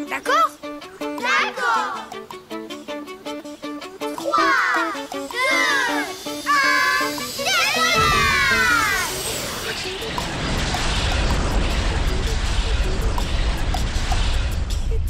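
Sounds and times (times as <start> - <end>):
background music: 0.0 - 15.0
high voices exclaiming: 4.2 - 9.2
cartoon rocket take-off rumble: 7.8 - 15.0.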